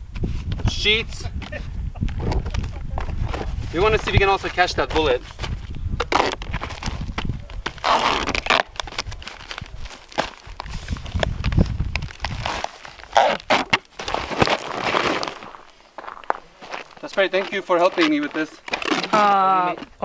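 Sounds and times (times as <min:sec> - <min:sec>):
duct tape ripping off roll: 0:06.0 - 0:15.5, 0:18.0 - 0:19.5.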